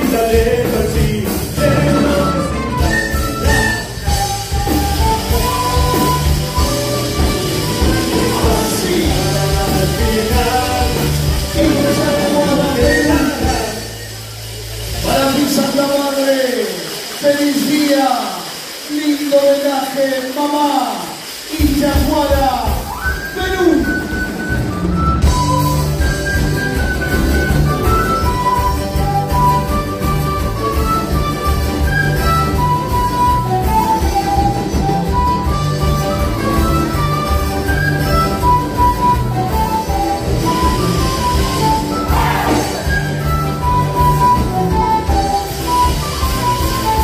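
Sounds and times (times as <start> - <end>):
live band playing dance music: 0.0 - 47.0.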